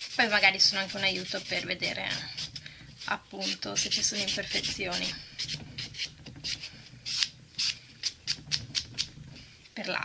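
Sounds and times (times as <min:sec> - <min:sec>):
nail buffer scuffing on nail: 0:00.0 - 0:08.2.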